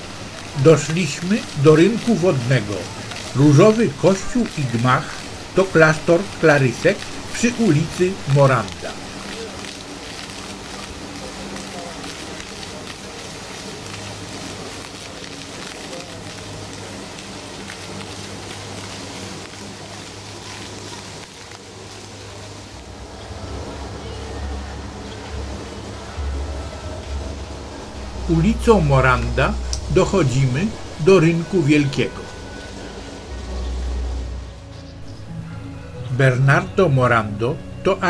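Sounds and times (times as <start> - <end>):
people's voices: 0.0 - 18.8, 23.0 - 34.0
fountain water jets splashing: 0.0 - 38.0
low rumble: 22.3 - 36.2.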